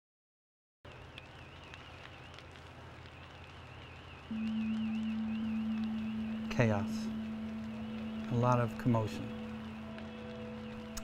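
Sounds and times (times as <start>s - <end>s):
faint warbling high tone: 4.3s - 9.9s
steady low tone: 4.3s - 11.0s.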